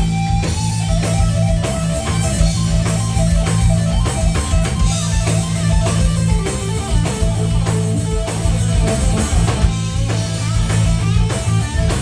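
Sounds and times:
drum kit: 0:00.0 - 0:12.0
electric guitars: 0:00.0 - 0:12.0.

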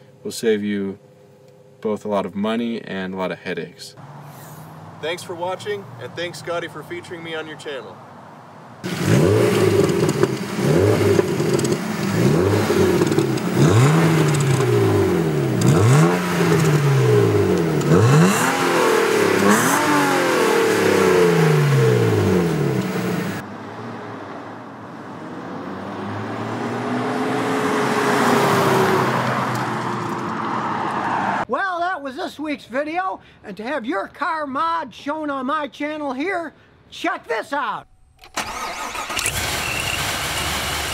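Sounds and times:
car engine revving in blips: 0:08.8 - 0:23.4
car driving past: 0:20.4 - 0:31.4.

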